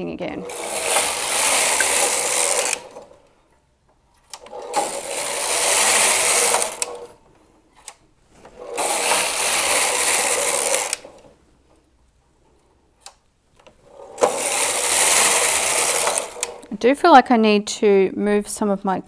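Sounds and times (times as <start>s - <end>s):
knitting machine carriage passing: 0.0s - 3.4s, 4.2s - 11.8s, 13.8s - 16.9s.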